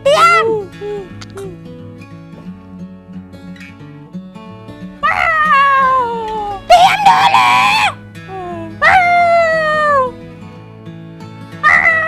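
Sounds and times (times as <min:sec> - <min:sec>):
high-pitched voice wailing: 0:00.0 - 0:01.5, 0:05.0 - 0:10.1, 0:11.6 - 0:12.0
soft music with plucked notes: 0:00.0 - 0:12.0
strained scream: 0:06.7 - 0:08.0, 0:11.6 - 0:12.0.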